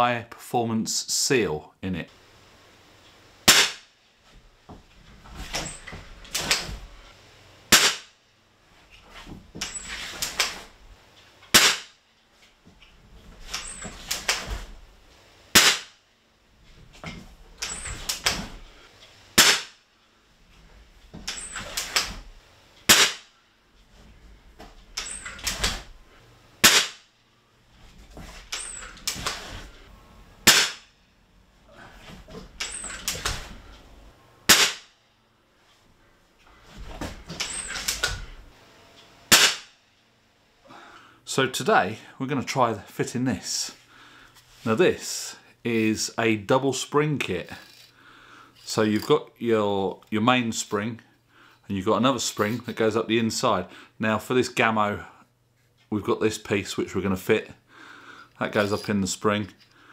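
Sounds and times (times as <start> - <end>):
air rifle shots: 3.4 - 3.9, 7.7 - 8.2, 11.5 - 12.0, 15.5 - 16.0, 19.4 - 19.8, 22.9 - 23.3, 26.6 - 27.1, 30.4 - 30.9, 34.5 - 34.9, 39.3 - 39.8.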